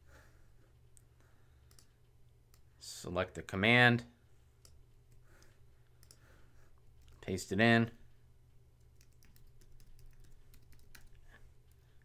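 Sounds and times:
computer mouse clicks: 1.6s - 1.9s, 4.6s - 6.2s, 8.8s - 11.8s.

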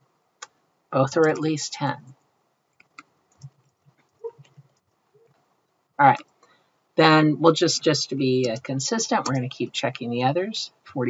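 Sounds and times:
keyboard typing: 1.0s - 1.5s, 2.8s - 4.9s, 8.4s - 9.5s.

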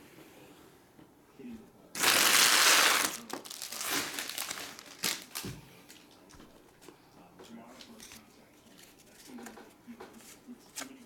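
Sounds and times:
wrappers crinkling: 2.0s - 6.1s.

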